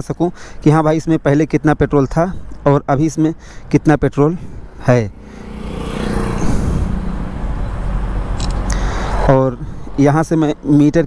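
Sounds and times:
vehicle engine passing by: 4.6s - 9.8s.

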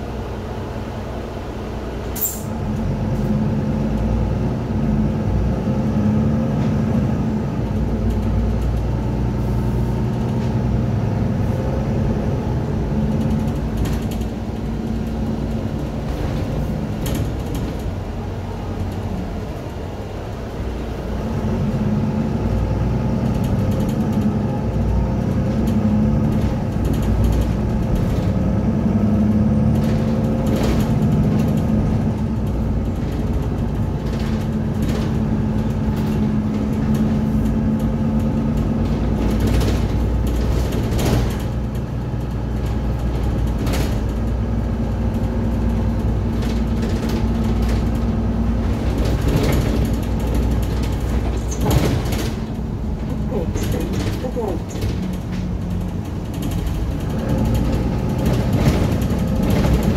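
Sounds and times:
bus diesel engine running: 0.0s - 59.9s
interior fittings rattling: 46.4s - 59.9s.

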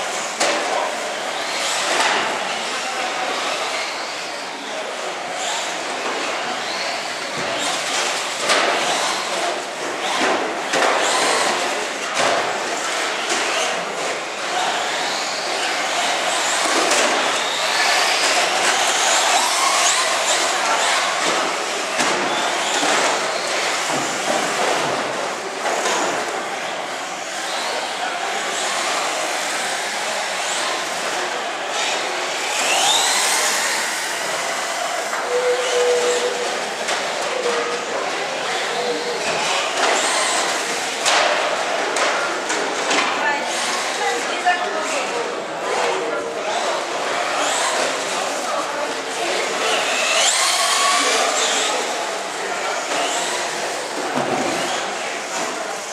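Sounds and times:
electric motors whining: 26.2s - 41.0s, 46.4s - 55.9s.

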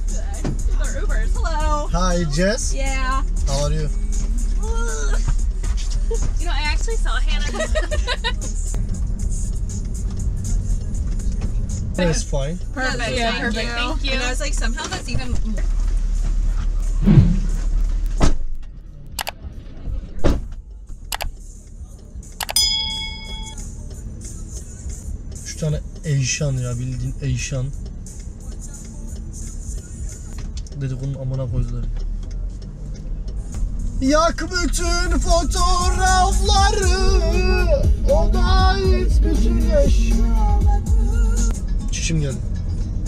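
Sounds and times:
low rumble in car cabin: 0.0s - 9.0s, 33.2s - 42.4s
car engine rumble: 0.0s - 43.0s
road noise: 0.0s - 43.0s
person laughing: 7.5s - 8.4s.

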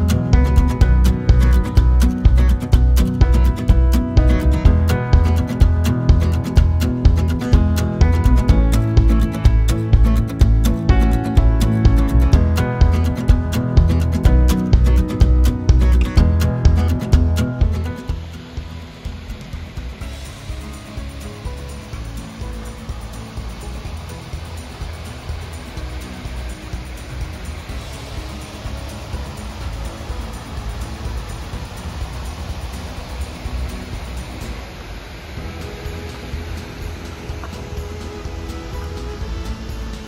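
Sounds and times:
creek flowing: 0.0s - 40.0s
faint background music: 0.0s - 40.0s.

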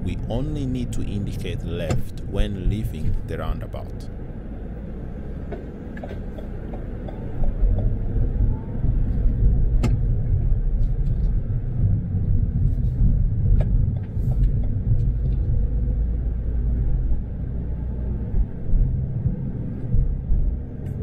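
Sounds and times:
car interior road noise: 0.0s - 21.0s.

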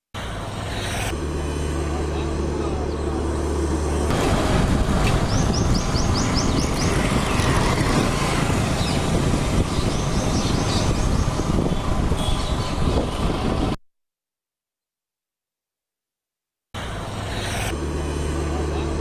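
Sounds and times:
traffic noise: 0.2s - 13.8s, 16.8s - 19.0s
vehicle engine running: 0.3s - 13.8s, 16.9s - 19.0s.

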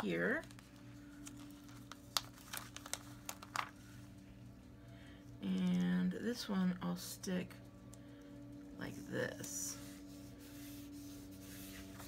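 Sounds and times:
low steady hum: 0.0s - 12.0s
sticker sheet crinkling: 0.2s - 3.8s.

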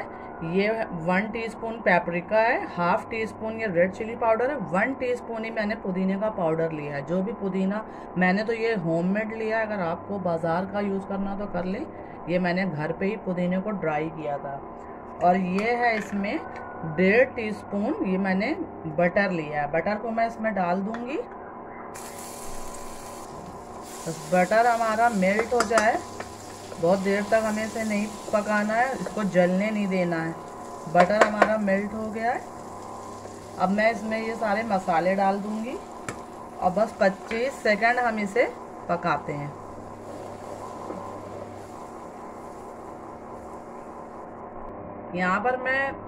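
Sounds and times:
induction cooktop hum: 0.0s - 46.0s
butter sizzling in a pan: 22.0s - 38.7s, 39.6s - 43.9s.

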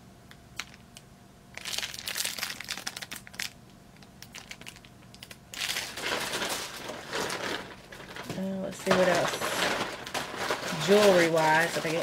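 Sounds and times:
plastic packaging crinkling: 1.5s - 12.0s.

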